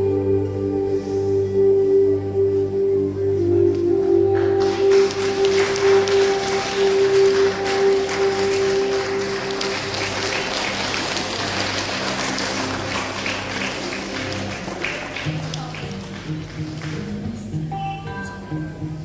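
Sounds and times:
soft background music: 0.0 - 19.0
audience applauding: 4.3 - 17.5.

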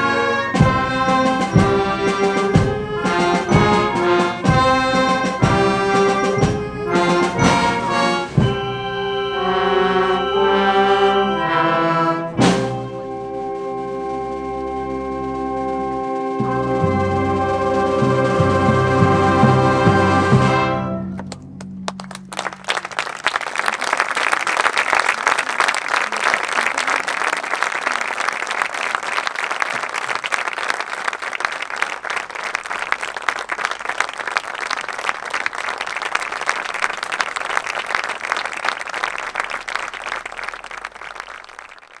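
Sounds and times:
brass chord of wind band: 0.0 - 21.4
audience applauding: 21.2 - 42.0.

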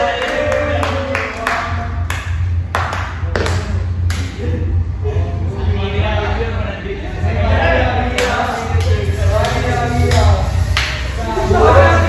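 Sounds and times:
people clapping: 0.0 - 4.4, 8.2 - 11.1.

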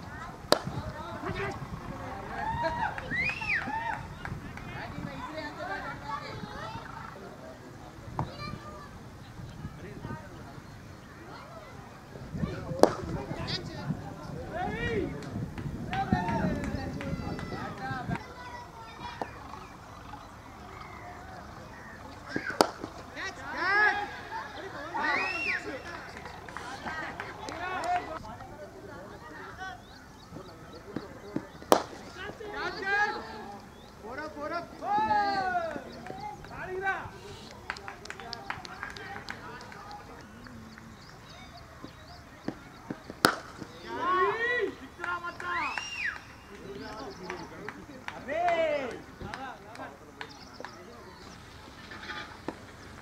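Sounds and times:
players calling and shouting: 0.0 - 53.0
cricket bat striking ball: 0.5 - 0.9, 12.8 - 13.2, 22.3 - 23.1, 30.9 - 32.4, 42.4 - 43.9.

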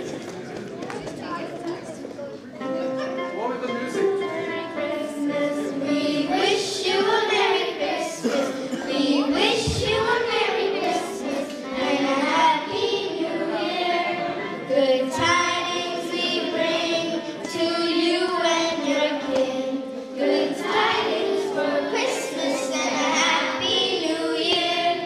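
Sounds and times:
girls' choir singing: 3.9 - 25.0.

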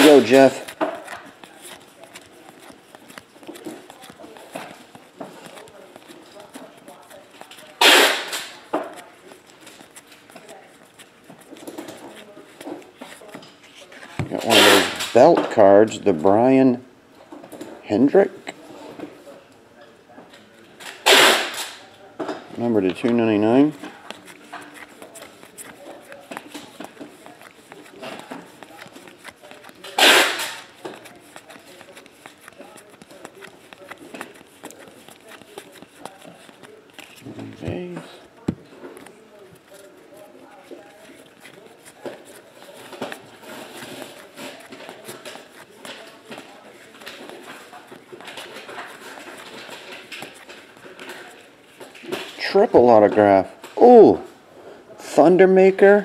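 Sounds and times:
steady rustle: 0.0 - 15.2, 22.6 - 52.4
cards flicking off a stack: 7.6 - 8.6, 20.9 - 21.8, 24.0 - 37.7.

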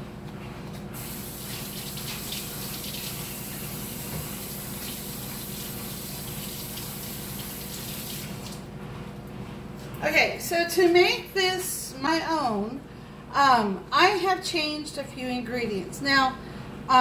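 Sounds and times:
hands washing splashing: 1.0 - 8.7
tap water running: 1.0 - 8.7.

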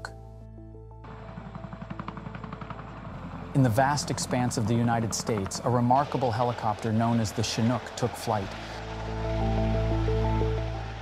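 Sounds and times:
faint background music: 0.0 - 11.0
helicopter rotors chopping: 1.0 - 11.0.

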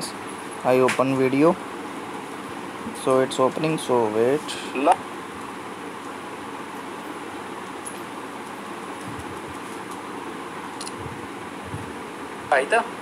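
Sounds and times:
hiss-like hum: 0.0 - 13.0.

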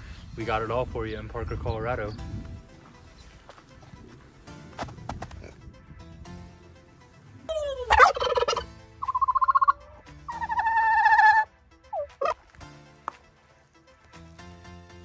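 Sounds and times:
turkey gobbling: 7.5 - 12.4
short turkey calls: 7.6 - 12.4.

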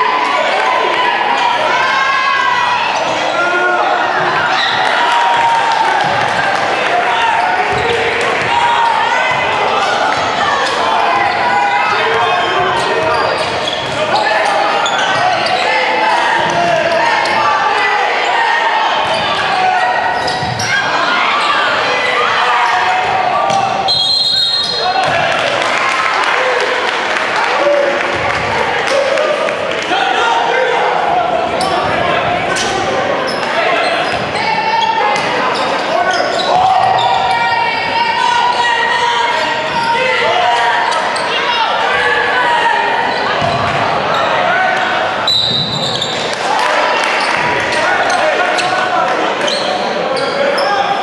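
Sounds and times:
indistinct voices: 0.0 - 51.0
referee's whistle: 23.8 - 24.9, 45.2 - 46.2.

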